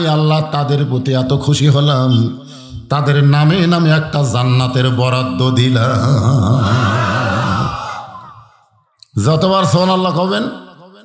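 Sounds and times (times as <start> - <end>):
man preaching in sing-song: 0.0 - 7.5, 9.0 - 11.0.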